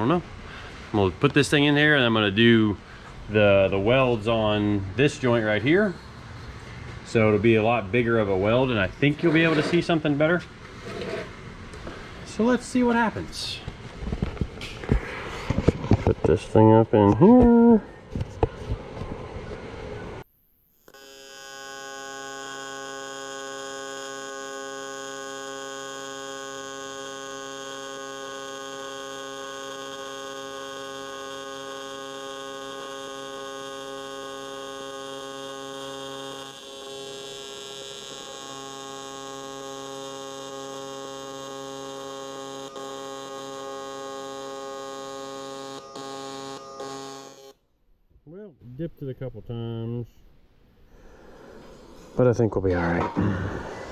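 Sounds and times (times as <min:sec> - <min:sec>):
welding arc buzzing: 0:20.7 - 0:47.6.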